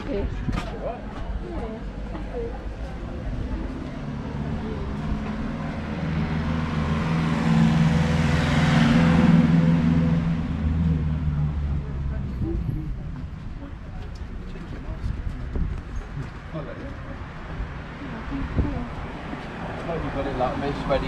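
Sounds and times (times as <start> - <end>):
vehicle engine humming: 0.0 - 21.0.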